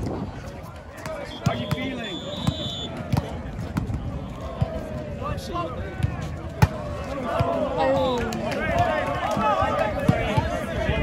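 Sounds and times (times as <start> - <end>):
crowd babble: 0.0 - 11.0
volleyball bouncing on asphalt: 0.9 - 4.8, 5.9 - 9.4, 10.0 - 10.6
whistle: 1.2 - 3.0.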